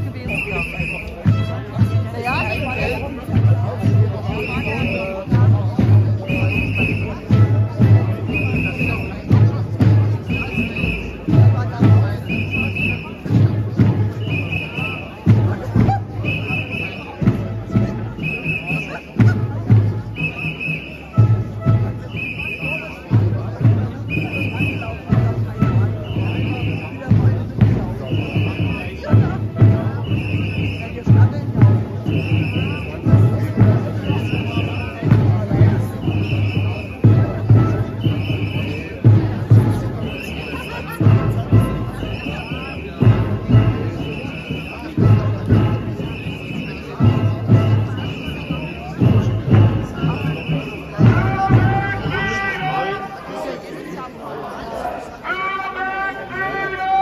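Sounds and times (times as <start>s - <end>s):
murmur of marching crowd: 0.0s - 57.0s
low drum thud: 25.0s - 30.1s.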